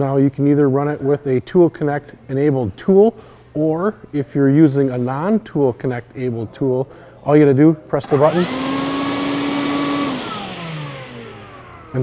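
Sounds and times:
dust extractor running: 8.0s - 12.0s
motor winding down: 8.0s - 12.0s.

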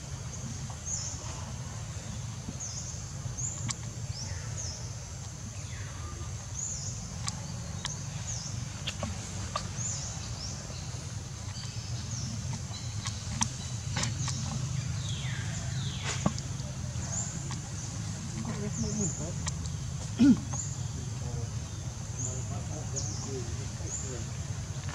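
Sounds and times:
bird chirping: 0.2s - 24.8s
faint clicks: 7.2s - 10.2s, 11.4s - 15.4s.

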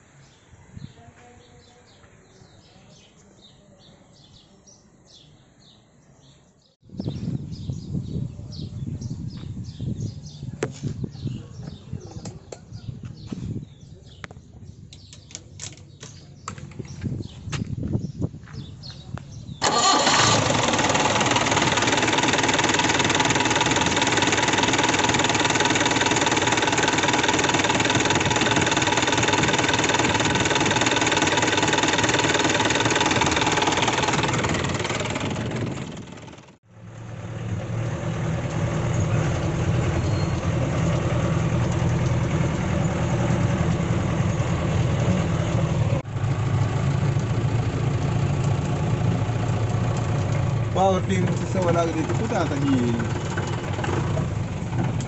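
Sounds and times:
diesel engine idling: 19.6s - 55.0s.

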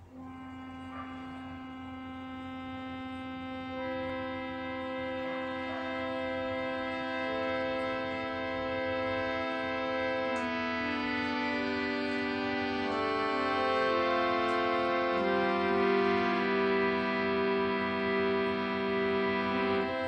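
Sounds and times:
faint low mains hum: 0.0s - 20.0s
harmonium playing held notes: 0.0s - 20.0s.

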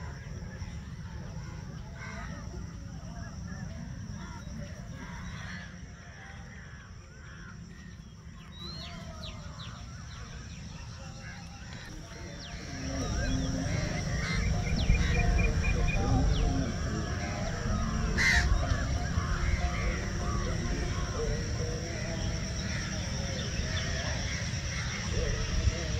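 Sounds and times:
birds calling and chirping: 0.0s - 25.9s
steady high-pitched drone: 0.0s - 25.9s
wind rumble on microphone: 8.7s - 25.9s.

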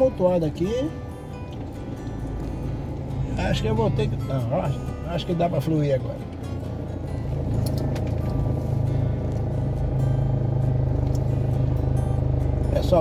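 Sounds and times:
car engine droning: 0.0s - 13.0s
music playing: 0.0s - 13.0s.

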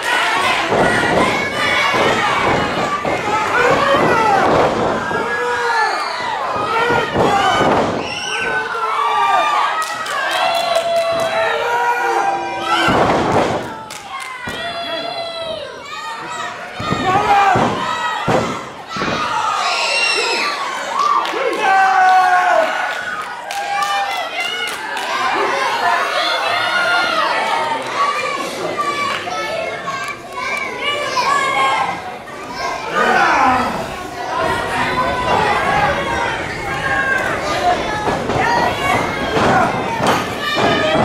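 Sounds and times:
children shouting: 0.0s - 41.0s
murmur of crowd chatter: 0.0s - 41.0s.

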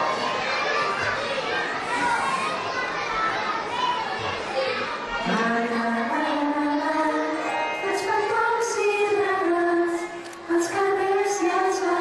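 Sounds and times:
children chattering and calling: 0.0s - 12.0s.

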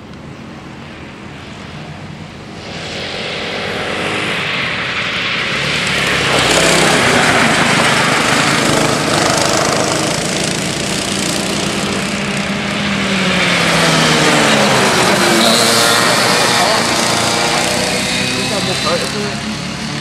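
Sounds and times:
kart engines racing: 0.0s - 20.0s.

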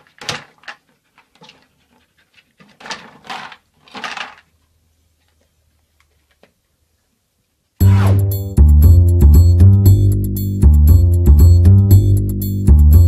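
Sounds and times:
dog panting and sniffing: 0.8s - 3.1s.

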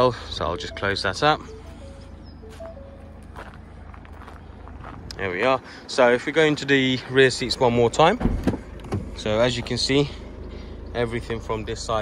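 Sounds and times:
footsteps on gravel: 1.2s - 7.8s.

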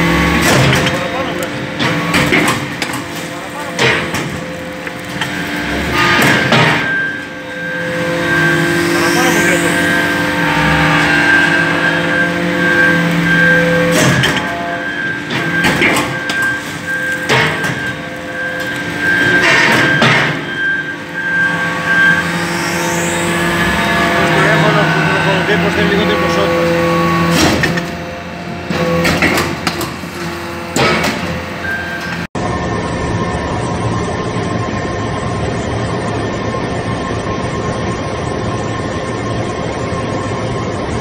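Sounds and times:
hydraulic unit humming: 0.0s - 32.3s
rising whine: 2.7s - 41.0s.

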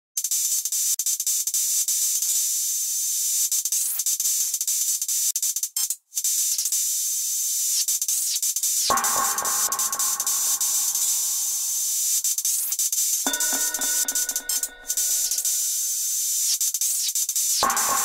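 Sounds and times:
high electronic hiss: 8.8s - 16.6s
sharp electronic clicks: 8.9s - 12.6s, 13.3s - 16.2s.

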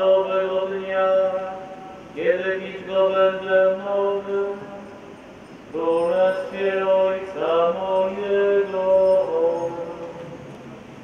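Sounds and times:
man chanting: 0.0s - 5.0s, 5.7s - 10.4s.

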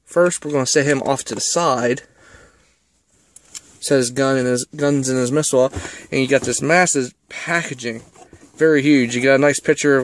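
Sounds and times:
man talking: 0.1s - 2.1s, 3.8s - 10.0s
cardboard box handling noise: 5.0s - 10.0s.

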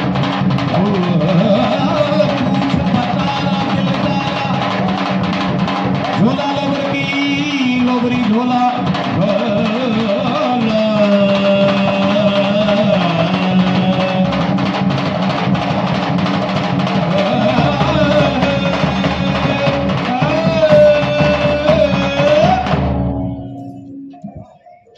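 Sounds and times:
steady drumming: 0.0s - 24.8s
wavering melody line: 17.2s - 24.9s.

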